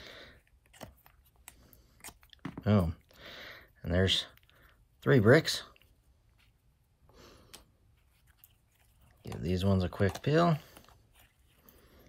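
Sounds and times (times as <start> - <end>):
faint handling noise: 7.4 - 12.0.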